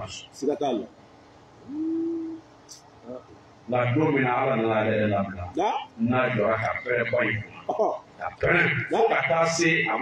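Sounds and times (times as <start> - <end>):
person humming low note: 1.6 - 2.5.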